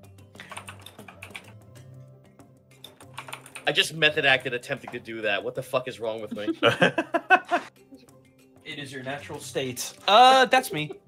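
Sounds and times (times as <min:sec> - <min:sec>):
quiet background music: 0:00.0 - 0:11.0
computer keyboard typing: 0:00.4 - 0:01.6, 0:03.0 - 0:03.7.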